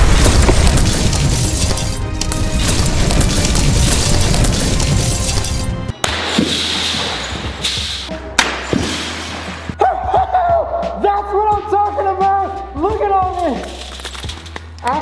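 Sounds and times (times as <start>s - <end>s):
glass shards clinking: 0.8s - 5.8s.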